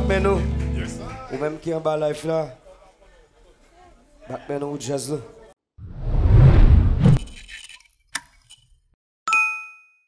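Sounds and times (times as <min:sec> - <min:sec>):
bell-like ding: 0:09.3 - 0:10.0.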